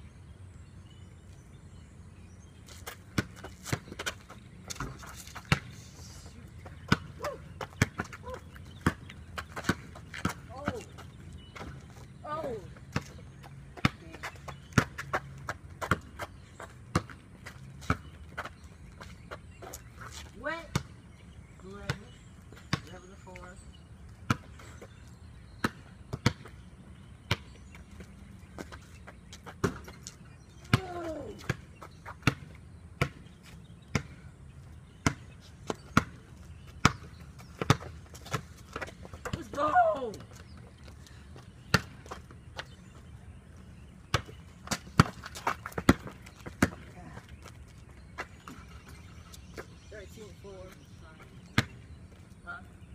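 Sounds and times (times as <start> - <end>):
basketball bouncing on concrete: 2.8 - 5.8, 6.6 - 19.1, 20.6 - 21.0, 21.6 - 23.1, 24.2 - 24.6, 25.6 - 26.6, 27.2 - 28.8, 29.4 - 30.0, 30.6 - 34.3, 34.9 - 40.4, 41.6 - 42.7, 44.1 - 47.6, 51.4 - 51.8.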